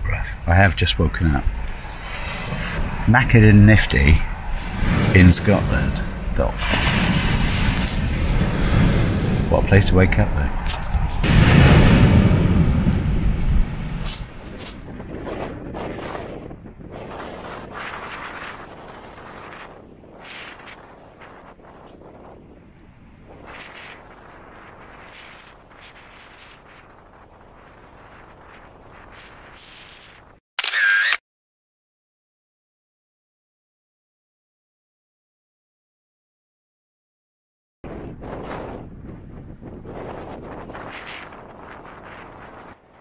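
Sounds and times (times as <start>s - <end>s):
wind buffeting microphone: 0.0s - 30.4s, 37.8s - 43.0s
camera shutter: 30.6s - 31.2s.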